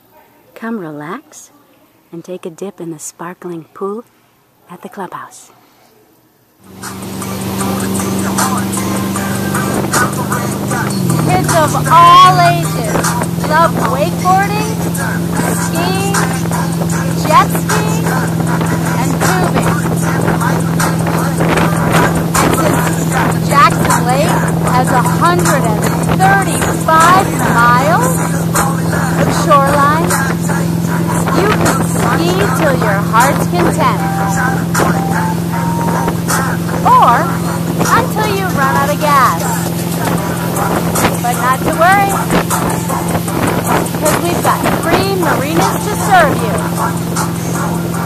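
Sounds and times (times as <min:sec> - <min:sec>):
motorboat engine running: 0:06.6 - 0:48.0
water rushing and spraying: 0:06.6 - 0:48.0
wind buffeting microphone: 0:06.7 - 0:48.0
voices calling out: 0:06.8 - 0:48.0.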